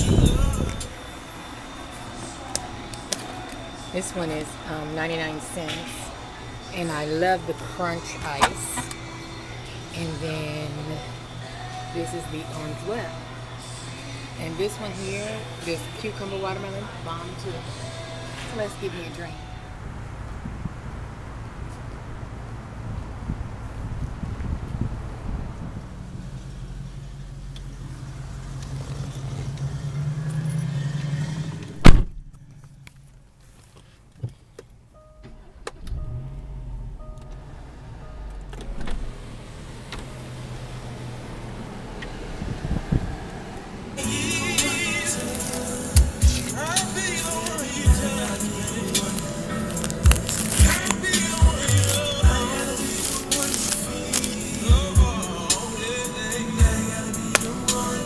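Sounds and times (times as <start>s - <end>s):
wind on microphone: 0.0s - 0.9s, 22.8s - 26.0s, 42.3s - 43.6s
low vehicle rumble: 0.0s - 58.0s
car door shutting: 31.6s - 32.4s, 38.2s - 40.1s
music with a beat: 44.0s - 58.0s.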